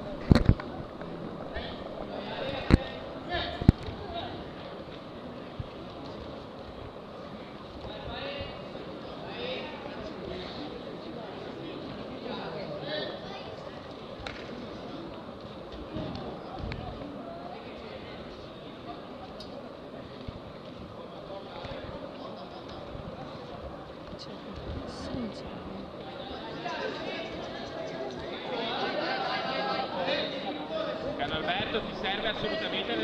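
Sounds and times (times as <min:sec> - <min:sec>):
indistinct voices of onlookers: 0:00.0 - 0:33.0.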